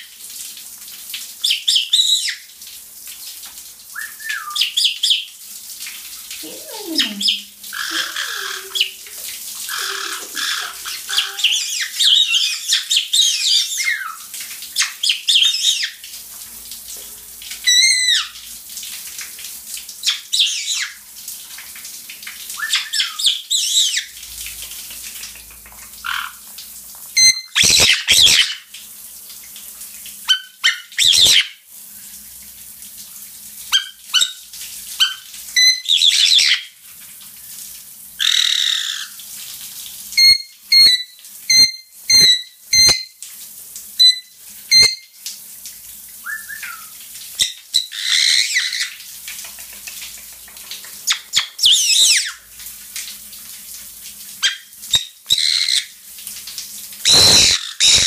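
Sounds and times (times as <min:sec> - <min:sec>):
parrots calling: 0:06.4 - 0:09.0, 0:09.7 - 0:16.0, 0:20.0 - 0:21.0, 0:22.6 - 0:24.1, 0:26.0 - 0:26.4, 0:27.2 - 0:28.6, 0:30.3 - 0:31.5, 0:35.0 - 0:36.6, 0:38.2 - 0:39.1, 0:40.2 - 0:43.1, 0:46.3 - 0:49.0, 0:51.0 - 0:52.4, 0:54.4 - 0:55.9, 0:57.0 - 0:58.0.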